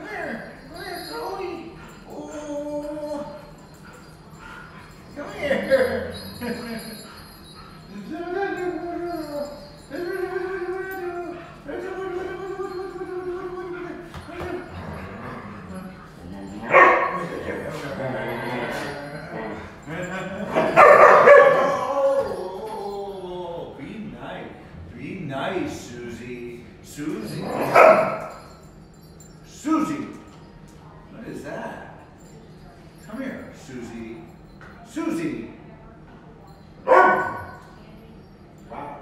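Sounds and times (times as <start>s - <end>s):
dogs vocalizing while playing: 3.3s - 10.0s, 14.6s - 22.4s.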